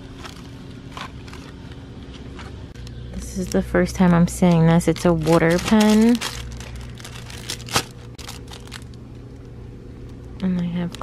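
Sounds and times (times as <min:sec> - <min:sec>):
low steady hum: 0:00.0 - 0:11.0
plastic packaging crinkling: 0:03.2 - 0:09.0.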